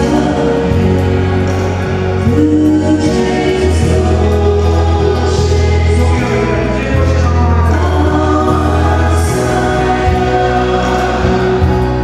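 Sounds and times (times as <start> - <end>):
group singing worship song: 0.0 - 12.0
sustained chords with deep bass: 0.0 - 12.0.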